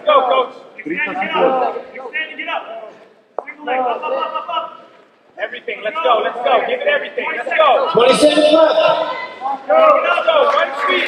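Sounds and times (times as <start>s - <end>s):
man shouting: 8.0s - 9.3s.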